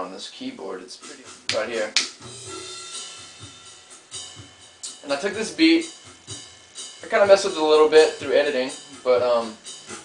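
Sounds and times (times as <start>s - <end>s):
drum kit beat: 1.0s - 10.0s.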